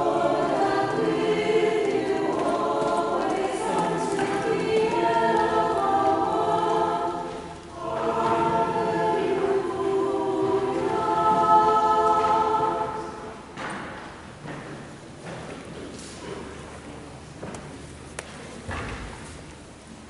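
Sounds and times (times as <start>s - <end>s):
choir singing a hymn: 0.0s - 13.9s.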